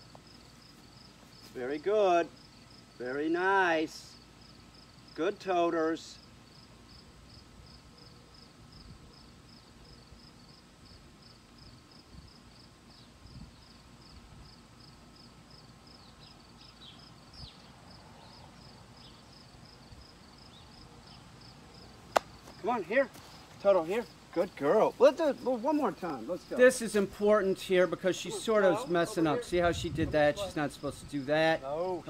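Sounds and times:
insect chirping: 0.0 - 5.2, 5.8 - 32.0.

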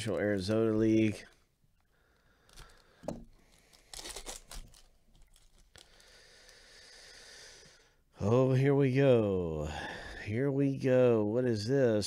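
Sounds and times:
foil wrapper snap: 2.5 - 6.0
foil wrapper tearing and crinkling: 2.5 - 6.5.

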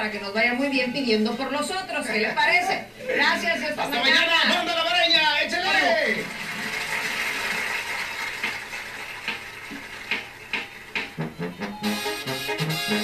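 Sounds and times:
brass band playing: 11.1 - 13.0
low tuba notes: 11.2 - 13.0.

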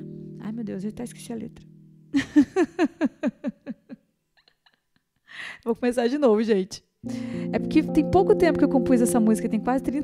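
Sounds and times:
held instrument chord: 0.0 - 2.1, 7.0 - 10.0
woman laughing: 2.2 - 5.3.

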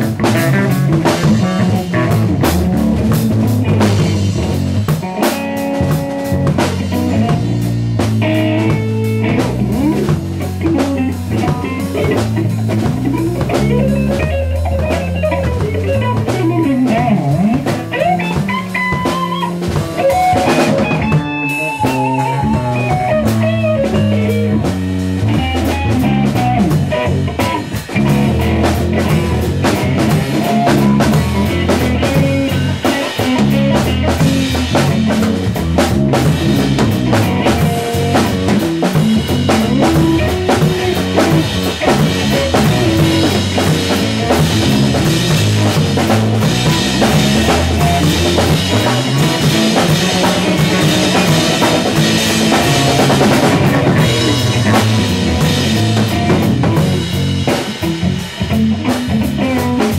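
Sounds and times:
drum beat: 0.0 - 59.9
electric guitars: 0.0 - 59.9.

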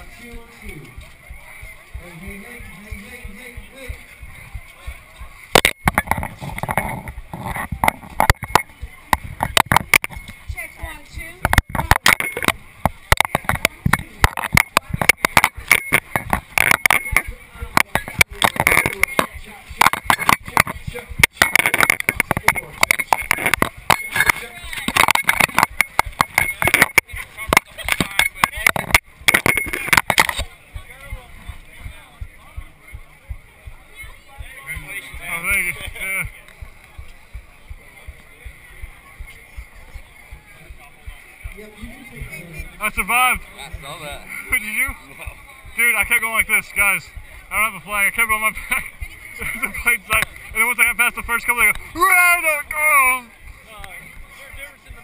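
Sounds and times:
crowd chatter: 0.0 - 55.0.

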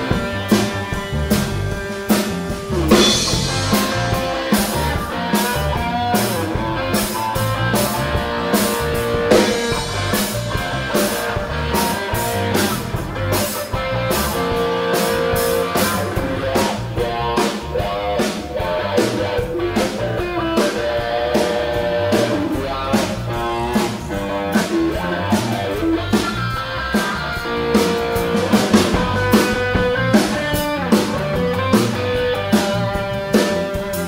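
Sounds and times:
drum kit steady beat: 0.0 - 34.0
electric bass: 0.0 - 34.0
electric guitar: 0.0 - 34.0
rock band playing: 0.0 - 34.0.

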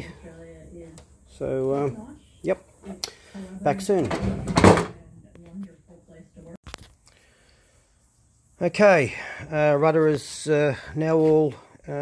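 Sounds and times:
man speaking: 8.6 - 12.0.

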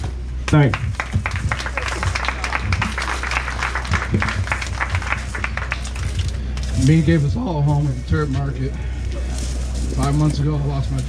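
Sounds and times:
background music: 0.0 - 11.0
crowd clapping: 0.4 - 7.2.

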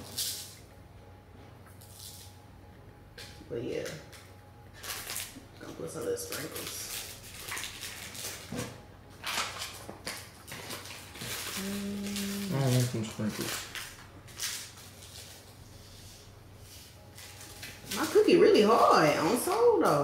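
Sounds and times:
sprinkles scattering: 0.0 - 0.7, 1.8 - 2.4, 4.1 - 16.0, 16.6 - 20.0
plastic bag crinkling: 4.7 - 15.6
person humming: 11.4 - 13.1
person murmuring: 11.5 - 13.3.

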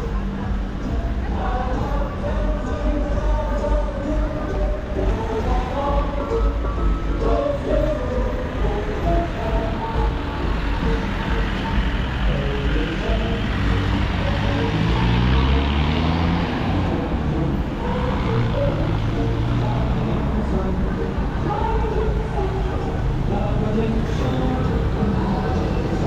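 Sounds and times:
road traffic passing: 0.0 - 26.0
vehicle engine pulling by: 3.3 - 26.0.

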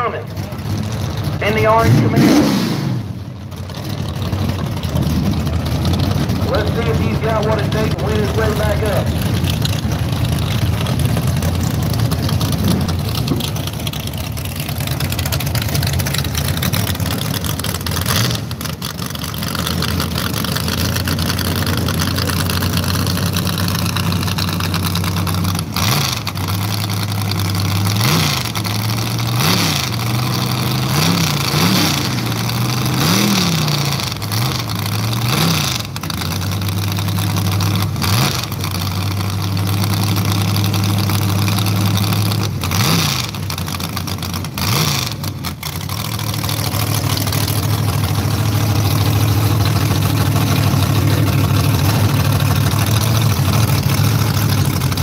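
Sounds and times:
drag car engine idling and revving: 0.0 - 55.0.

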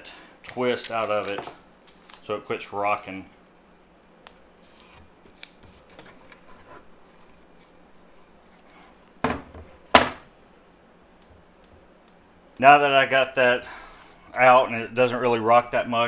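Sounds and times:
wooden board thudding on metal: 9.2 - 10.3.

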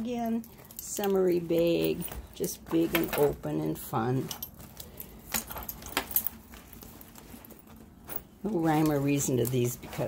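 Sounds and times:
fabric rustling: 0.0 - 10.0
handbag metal hardware clicking: 4.3 - 6.4.

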